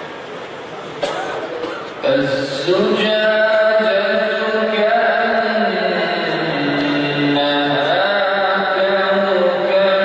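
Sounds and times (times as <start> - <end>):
man reciting melodically: 2.0 - 10.0.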